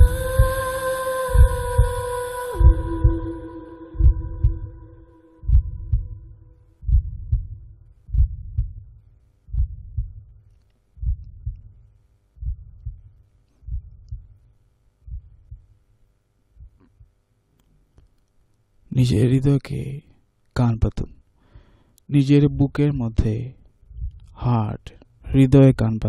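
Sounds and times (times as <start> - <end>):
held musical tone: 0.0 - 6.6
heartbeat thumps: 0.0 - 10.4, 11.0 - 14.4, 15.0 - 15.8, 16.6 - 17.2, 23.9 - 24.3.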